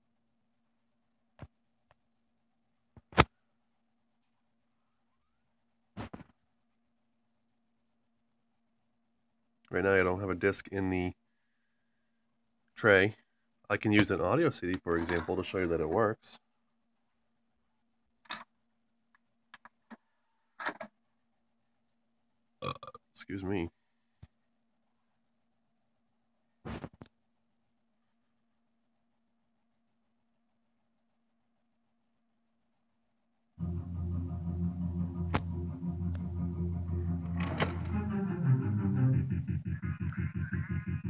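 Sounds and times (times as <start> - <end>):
faint steady hum: 0.0 - 41.0
short burp: 22.6 - 23.0
music from a small speaker: 33.6 - 41.0.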